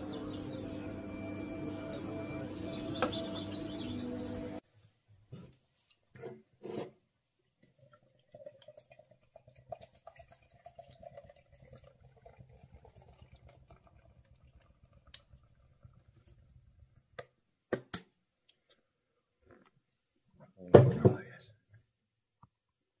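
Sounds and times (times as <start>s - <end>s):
lager gurgling into a glass: 7.6s - 17.0s.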